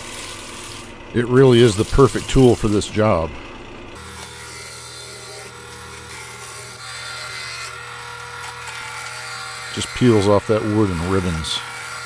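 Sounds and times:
gouge cutting wood: 0:00.0 - 0:03.2, 0:04.0 - 0:12.0
lathe motor hum: 0:00.0 - 0:12.0.

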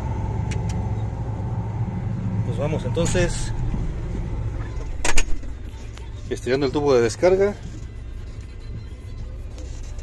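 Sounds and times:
combine harvester running: 0:00.0 - 0:06.8.

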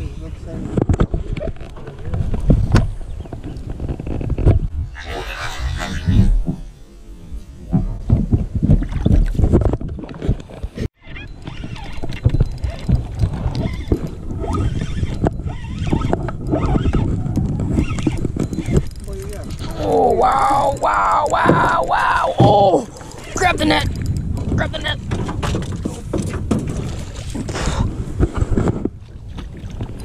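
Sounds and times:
low rumble: 0:04.6 - 0:09.6
voice-like calls: 0:04.9 - 0:07.4, 0:19.6 - 0:23.4
fishing reel clicking: 0:13.4 - 0:21.3.

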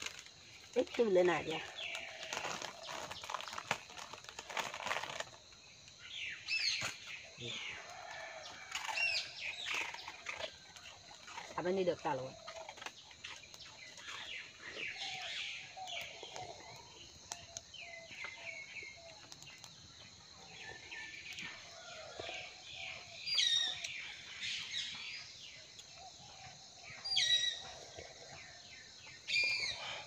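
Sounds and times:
birds chirping: 0:06.0 - 0:30.0.

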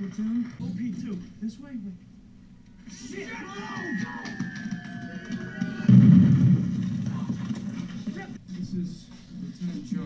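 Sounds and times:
shell exploding: 0:05.8 - 0:07.8.

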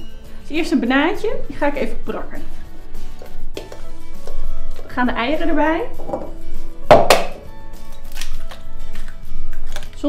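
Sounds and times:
background music: 0:00.0 - 0:10.0
egg cracking on bowl rim: 0:06.9 - 0:10.0.

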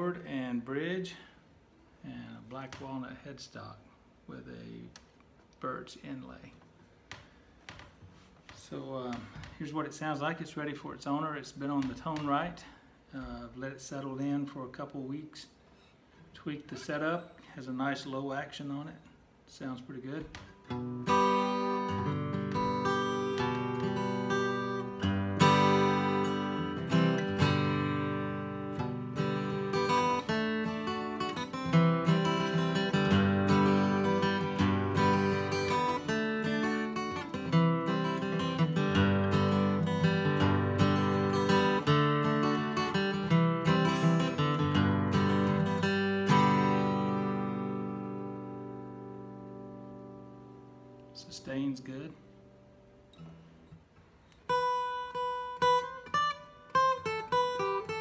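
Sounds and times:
acoustic guitar playing: 0:20.3 - 0:58.0.

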